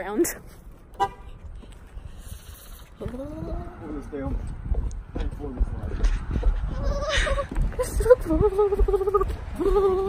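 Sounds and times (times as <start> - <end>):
low rumble of movement: 0.5 - 10.0
car horn toot: 1.0 - 1.3.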